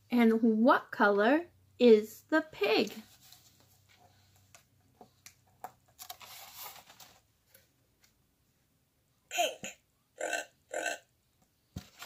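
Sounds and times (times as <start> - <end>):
recorded pig oinking: 9.3 - 11.1.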